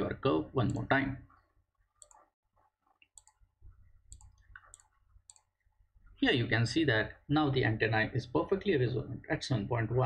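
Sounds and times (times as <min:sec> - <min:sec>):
faint computer mouse clicks: 0:02.0 - 0:02.3, 0:03.0 - 0:03.4, 0:04.1 - 0:05.5.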